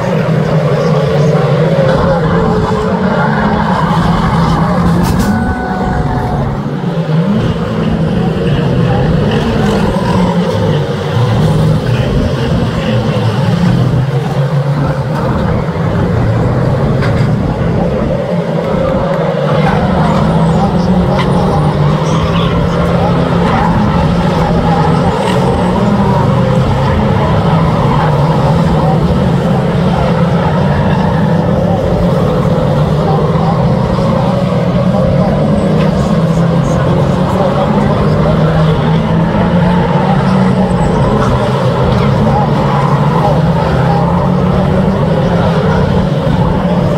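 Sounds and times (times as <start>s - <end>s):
racing car engines revving: 0.0s - 46.9s.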